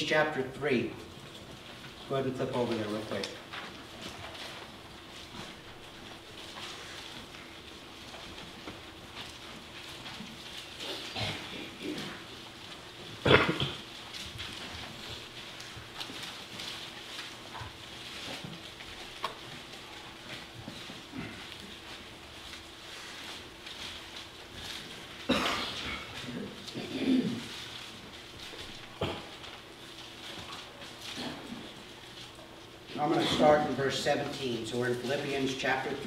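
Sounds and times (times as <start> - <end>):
pages rustling: 2.4 - 36.0.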